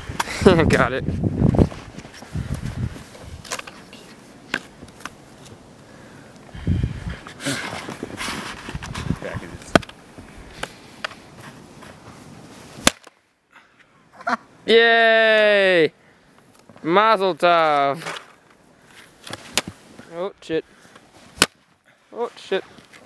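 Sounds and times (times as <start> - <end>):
footsteps crunching in snow: 1.1 - 5.7, 7.3 - 12.8.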